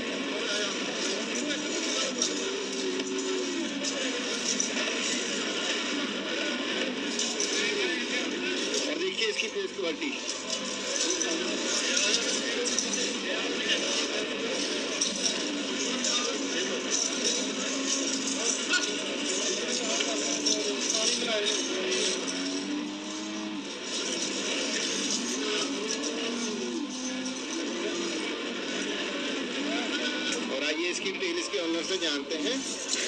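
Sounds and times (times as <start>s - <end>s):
music: 0.0s - 33.0s.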